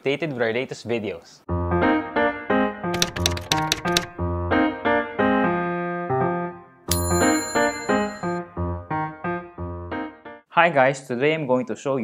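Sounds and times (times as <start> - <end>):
keyboard typing clicks: 3.0 - 4.2
upbeat background music: 3.0 - 4.4.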